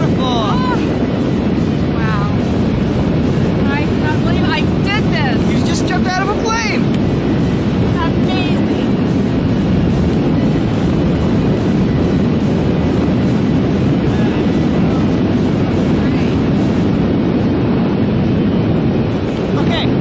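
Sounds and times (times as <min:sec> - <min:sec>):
wind rushing over microphone: 0:00.0 - 0:20.0.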